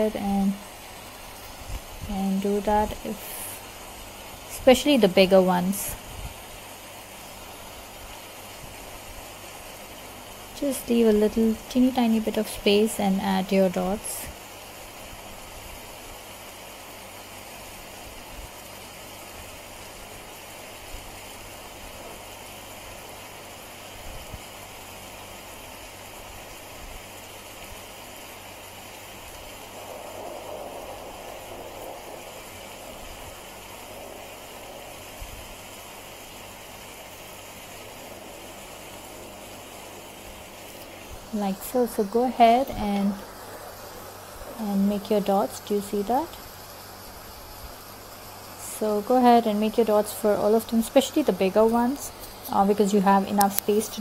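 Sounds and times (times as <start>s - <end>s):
low hiss of room tone: 0.0s - 54.0s.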